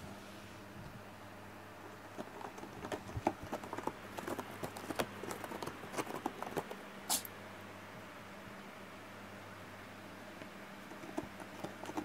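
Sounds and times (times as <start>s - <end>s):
electric fan humming: 0.0s - 12.0s
cat scratching cardboard: 1.8s - 7.3s, 10.8s - 12.0s.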